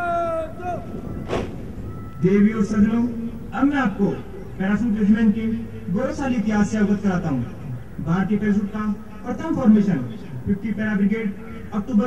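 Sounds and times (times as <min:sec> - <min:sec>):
sharp crack: 0:01.2 - 0:01.8.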